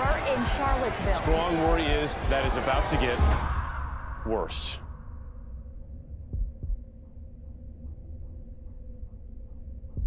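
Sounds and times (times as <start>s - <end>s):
low rumbling drone: 3.2s - 10.0s
heartbeat double thump: 6.2s - 7.1s.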